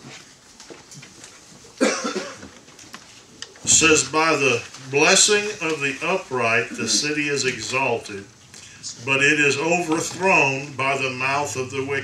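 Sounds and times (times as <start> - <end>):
person coughing: 1.8 - 2.5.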